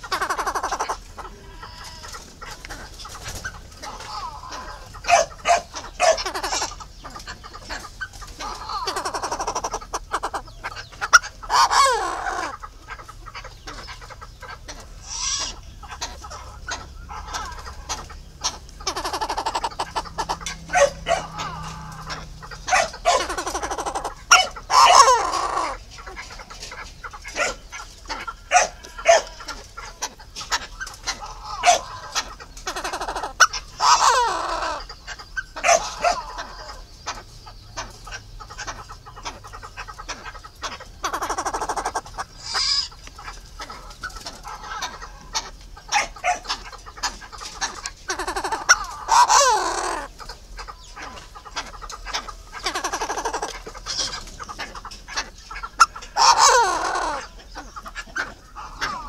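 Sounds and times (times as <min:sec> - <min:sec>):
fowl calling: 0:00.0 - 0:59.0.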